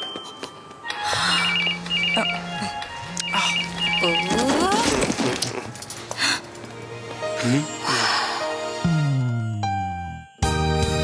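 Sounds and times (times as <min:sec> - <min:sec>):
mobile phone ringing: 0:00.0 - 0:04.9
background music: 0:00.3 - 0:11.0.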